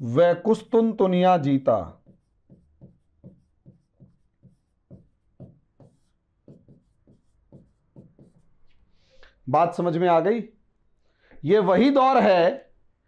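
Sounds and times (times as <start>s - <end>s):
marker pen writing on whiteboard: 1.6s - 9.0s.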